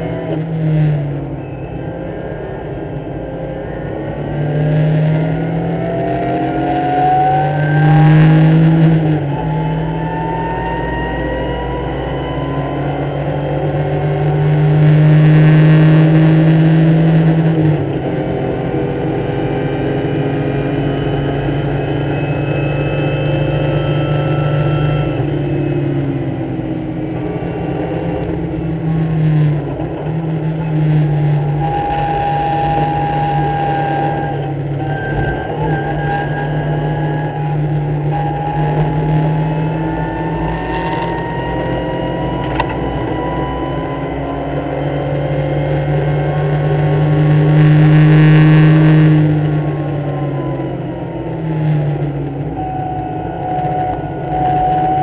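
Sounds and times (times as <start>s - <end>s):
race car engine revving: 0.0s - 55.0s.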